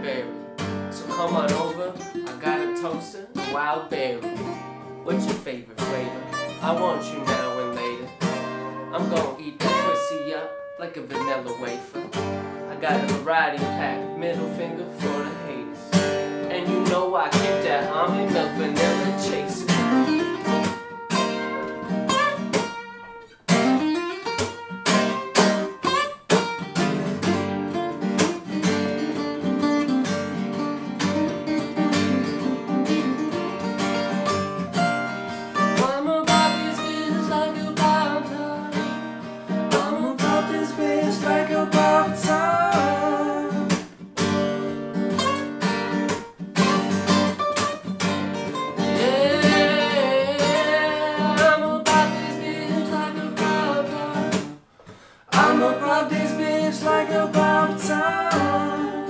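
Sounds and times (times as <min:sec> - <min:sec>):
acoustic guitars playing: 0:00.0 - 0:59.0.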